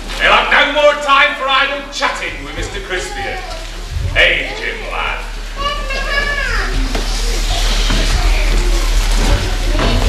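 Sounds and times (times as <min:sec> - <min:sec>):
children calling out: 0:02.4 - 0:10.0
high voice long call: 0:04.0 - 0:05.2.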